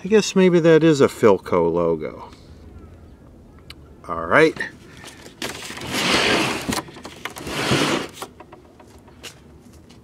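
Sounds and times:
wooden cabinet scraping on concrete: 5.4 - 8.4.

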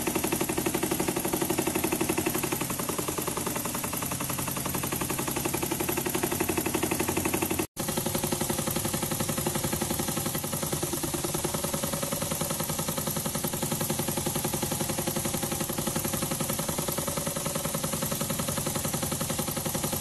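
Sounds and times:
small model engine running: 0.0 - 20.0.

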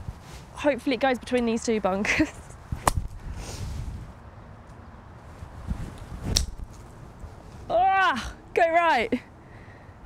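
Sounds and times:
wind rumble on microphone: 0.0 - 0.6, 2.2 - 8.0.

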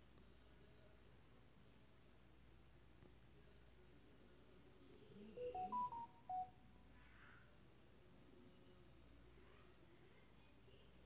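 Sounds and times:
electronic beep jingle: 5.4 - 6.5.

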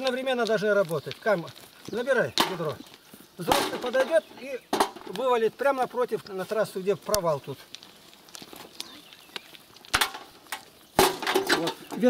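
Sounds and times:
small stones clicking together: 0.0 - 12.0.

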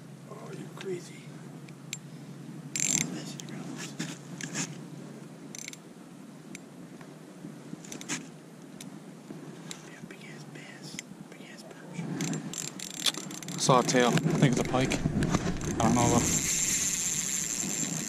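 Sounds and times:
fishing reel clicks and scrapes: 2.8 - 3.1, 5.6 - 5.8, 12.2 - 14.8, 15.6 - 18.0
soft hiss: 7.8 - 12.5.

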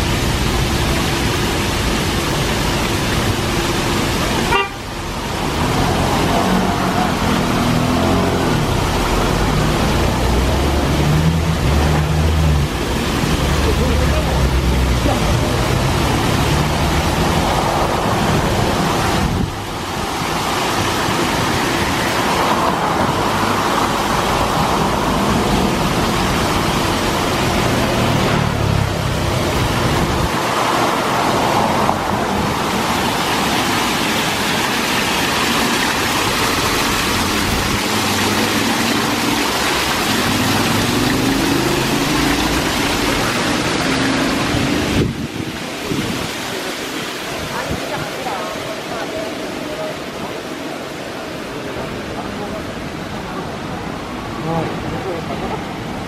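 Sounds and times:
water rushing down fountain: 0.0 - 56.0.

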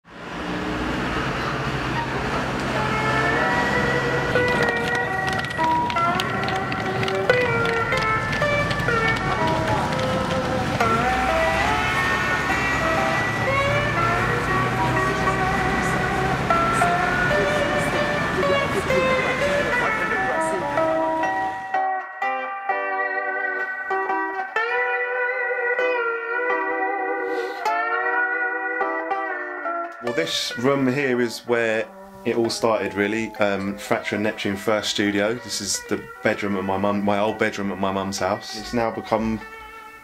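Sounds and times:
low street traffic rumble: 0.0 - 21.8, 30.0 - 40.0
slide guitar melody: 0.8 - 40.0.

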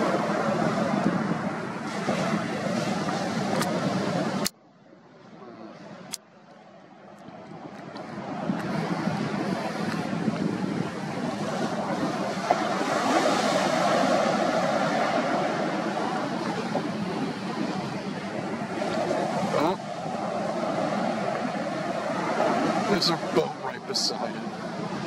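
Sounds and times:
surf breaking: 0.0 - 4.4, 7.9 - 25.0
wind buffeting microphone: 0.0 - 25.0.

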